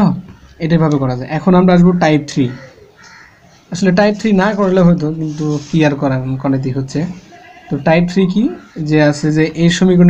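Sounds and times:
man speaking: 0:00.0 - 0:02.8, 0:03.7 - 0:10.0.

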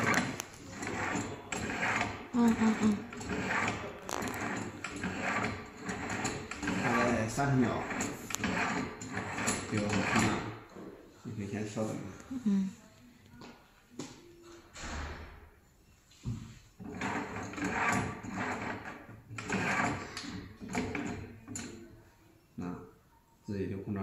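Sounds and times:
people talking: 0:02.4 - 0:03.0.

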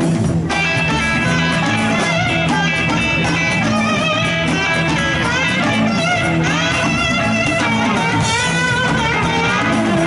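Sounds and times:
drum kit: 0:00.0 - 0:10.0
guitar: 0:00.0 - 0:10.0
keyboard: 0:00.0 - 0:10.0.

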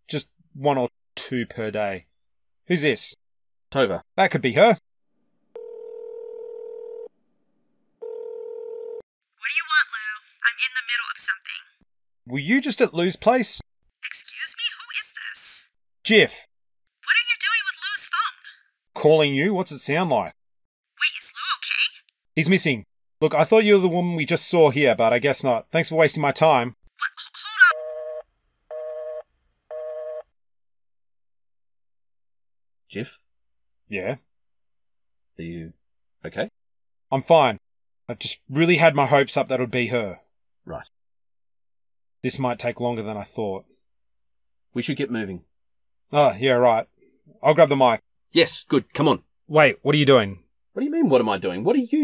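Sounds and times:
telephone ringback tone: 0:05.6 - 0:07.1, 0:08.0 - 0:09.0, 0:27.7 - 0:30.3.

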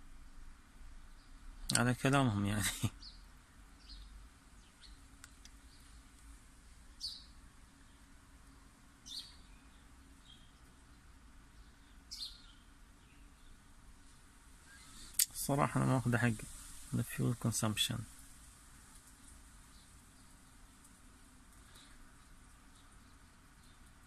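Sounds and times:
low steady hum: 0:00.0 - 0:24.0
faint bird chirps: 0:01.1 - 0:06.1, 0:06.9 - 0:13.7, 0:14.6 - 0:20.9, 0:21.5 - 0:24.0.

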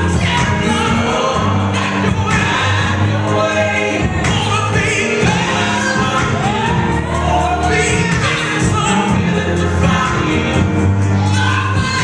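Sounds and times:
choir singing over loudspeaker: 0:00.0 - 0:12.0.

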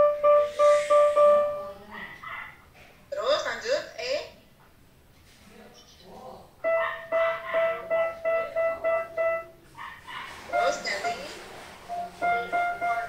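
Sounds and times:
piano playing detached notes: 0:00.0 - 0:02.0, 0:06.6 - 0:09.8, 0:10.4 - 0:13.0.

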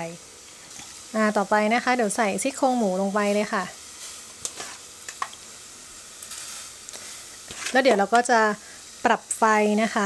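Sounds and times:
boiling water hissing: 0:00.0 - 0:10.0.

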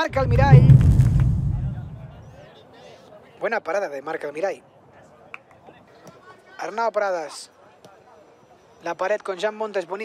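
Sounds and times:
deep transition boom: 0:00.0 - 0:02.4.

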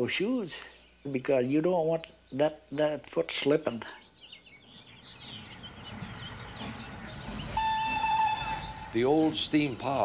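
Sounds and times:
steam hissing: 0:06.7 - 0:10.0
steam whistle blowing: 0:07.1 - 0:09.4.

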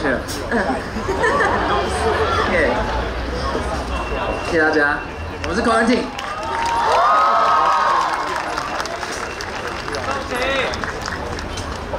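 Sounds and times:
crowd murmur: 0:00.0 - 0:05.5, 0:06.1 - 0:11.9.

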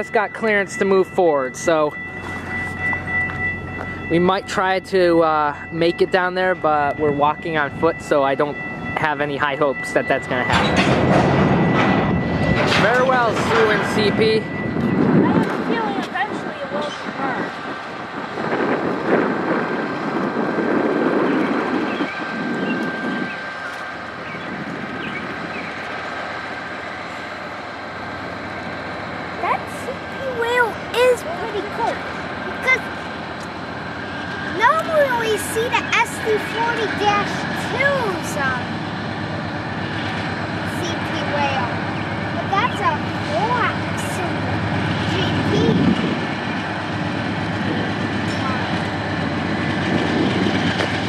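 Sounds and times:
high-pitched whine: 0:00.0 - 0:51.0
train wheels rumbling on rail: 0:00.0 - 0:51.0.

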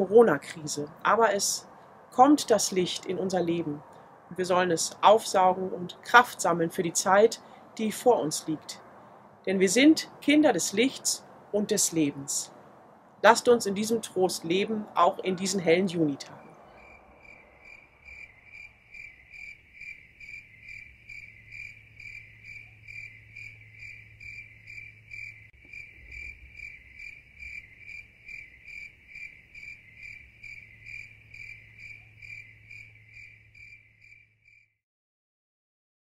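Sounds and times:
cricket chirping: 0:16.4 - 0:34.8.

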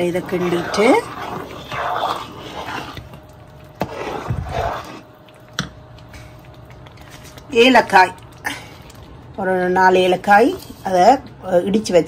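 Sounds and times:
spoon stirring thick food: 0:00.0 - 0:11.3.

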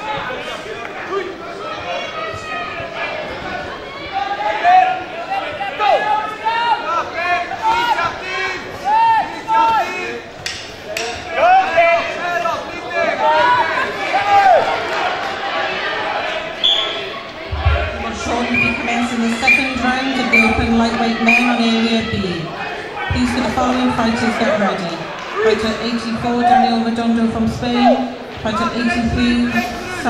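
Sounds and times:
voices shouting in echoing hall: 0:00.0 - 0:30.0.

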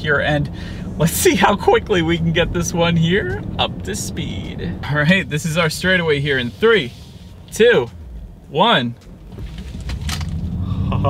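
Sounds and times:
electric car accelerating rumble: 0:09.1 - 0:11.0.

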